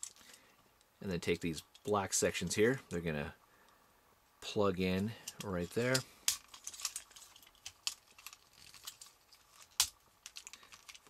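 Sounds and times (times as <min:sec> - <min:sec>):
toy parts clicking and rattling: 0:00.0 - 0:00.4, 0:05.2 - 0:11.0.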